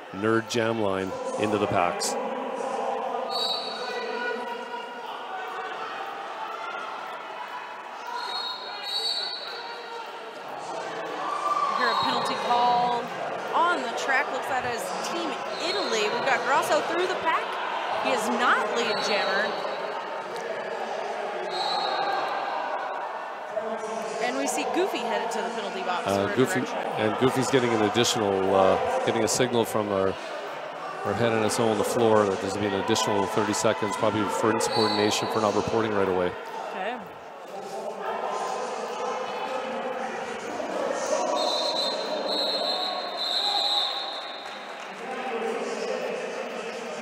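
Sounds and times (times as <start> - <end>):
voices of skaters and spectators: 0.0 - 47.0
referee whistle blasts: 8.2 - 9.6, 34.6 - 35.3, 41.4 - 44.6.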